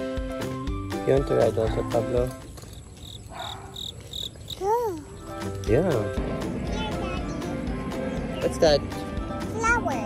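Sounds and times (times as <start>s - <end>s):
insect chirping: 2.4s - 5.5s.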